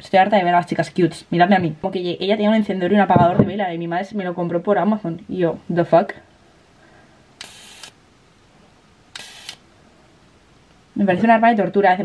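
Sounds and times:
electric arc lighter buzzing: 7.4 - 8.0, 9.1 - 9.6.

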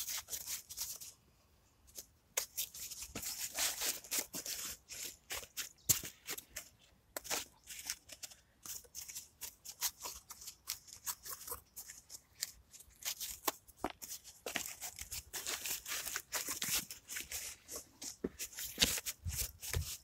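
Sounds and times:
cardboard tearing and crackling: 2.4 - 20.0.

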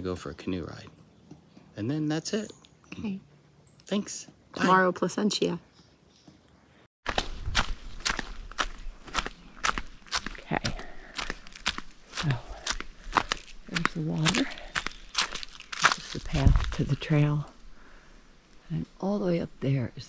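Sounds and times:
footsteps on dry leaves: 7.0 - 17.4.

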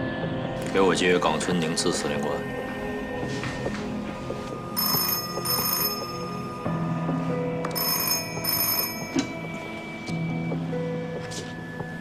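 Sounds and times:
telephone bell ringing: 4.6 - 10.2.

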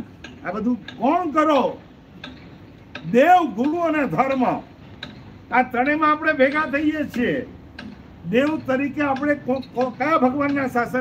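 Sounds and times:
faint clicks: 6.6 - 10.8.

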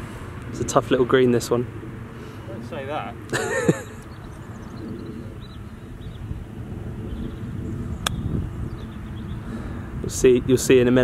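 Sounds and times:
low outdoor rumble: 0.0 - 11.0
golf club striking ball: 8.0 - 8.4.

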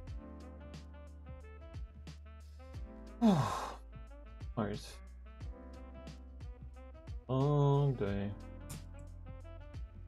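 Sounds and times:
man sighing: 3.2 - 3.8.

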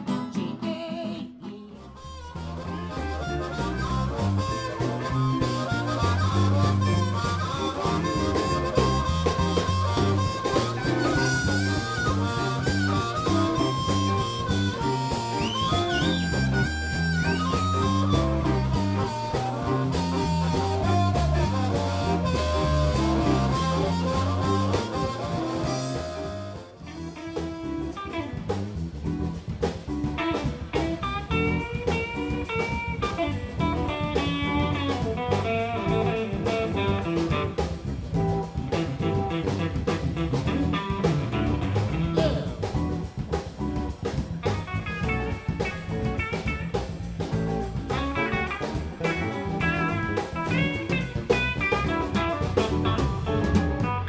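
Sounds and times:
blues band playing: 0.0 - 54.0
electric guitar: 0.0 - 54.0
harmonica solo: 1.8 - 28.5, 44.6 - 54.0.

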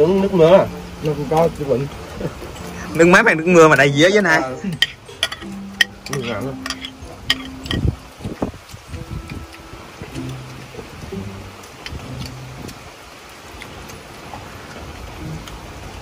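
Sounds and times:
rain falling: 0.0 - 16.0.

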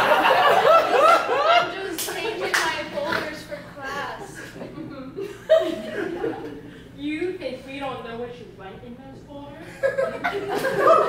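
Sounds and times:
audience laughter: 0.0 - 2.5, 4.4 - 6.7, 9.8 - 11.0
sharp hand claps: 2.0 - 2.8.

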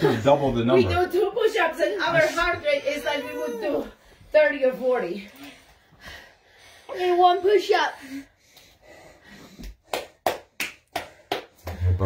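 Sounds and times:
person breathing hard: 5.6 - 10.2.

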